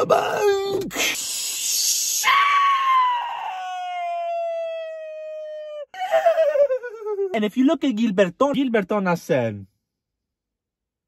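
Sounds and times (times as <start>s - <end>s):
man's breathy hiss: 1.0s - 2.2s.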